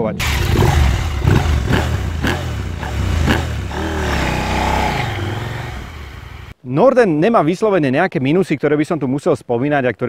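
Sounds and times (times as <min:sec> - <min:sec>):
motorcycle engine accelerating: 0:00.2 - 0:06.5.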